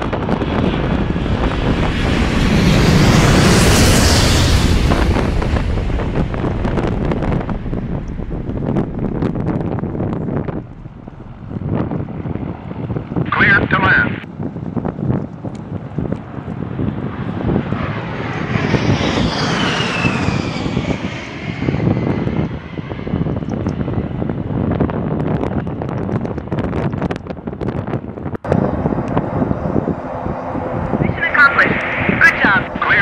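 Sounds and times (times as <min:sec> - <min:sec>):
turbine whine: 0:00.0 - 0:14.3, 0:15.5 - 0:26.0, 0:28.4 - 0:33.0
helicopter engines and rotor: 0:00.0 - 0:25.0, 0:28.5 - 0:33.0.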